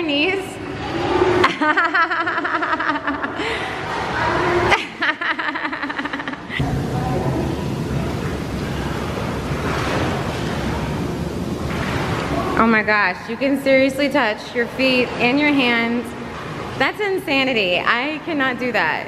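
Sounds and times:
hot tub jets churning water: 0.0s - 19.0s.

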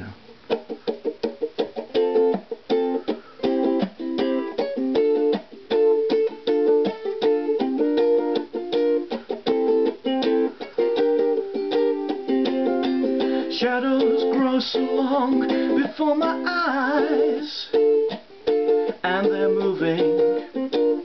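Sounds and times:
ukulele strummed reggae style: 0.0s - 21.0s.

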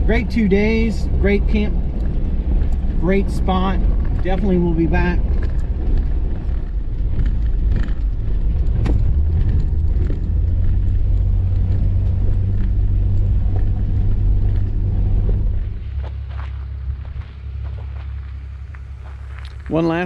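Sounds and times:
car engine drone: 0.0s - 20.0s
gravel knocks: 1.6s - 20.0s
tyre rumble: 1.7s - 19.8s.

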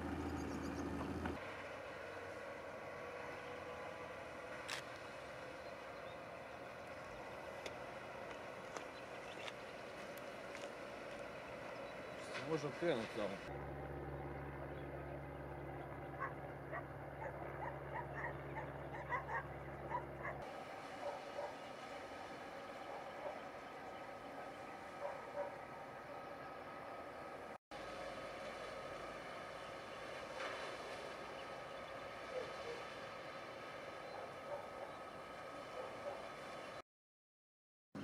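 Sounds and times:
low engine hum: 0.0s - 36.8s
dog yelping and barking: 16.2s - 20.4s, 21.0s - 21.6s, 25.0s - 25.6s.

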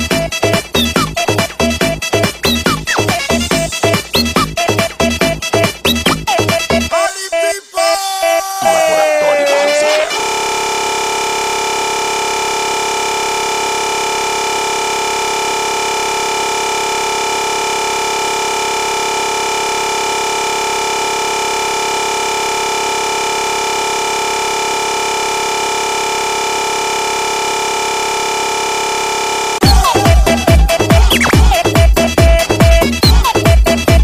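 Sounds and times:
electronic drone: 8.6s - 31.6s.

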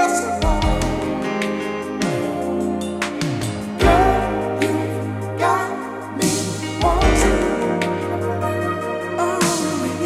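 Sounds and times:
song with held chords: 0.0s - 10.0s.

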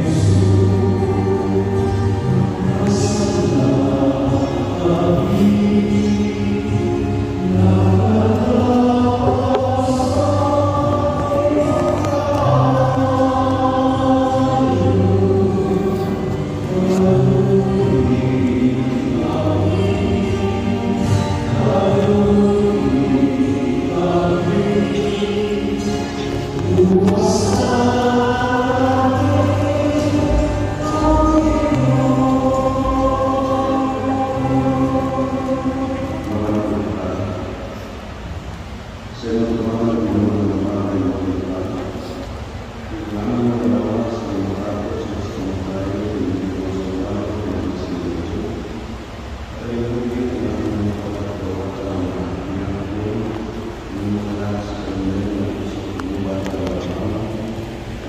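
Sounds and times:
choir singing a hymn: 0.0s - 58.0s
low accompanying notes: 0.0s - 58.0s.

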